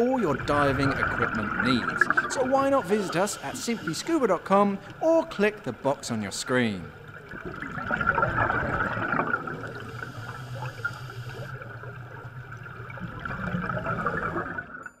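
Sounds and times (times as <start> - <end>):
air bubbles gurgling underwater: 0.0 - 5.0, 6.9 - 14.9.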